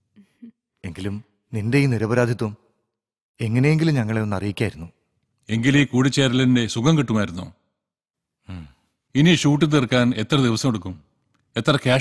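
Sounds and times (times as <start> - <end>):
man speaking: 0.8 - 2.6, 11.6 - 12.0
breathy vocal sound: 8.4 - 8.9.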